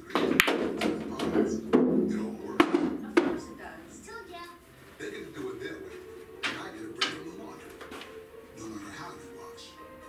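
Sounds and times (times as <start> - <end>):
sharp knocks: 0.0 - 3.5
background music: 0.0 - 10.0
voice on television: 0.0 - 10.0.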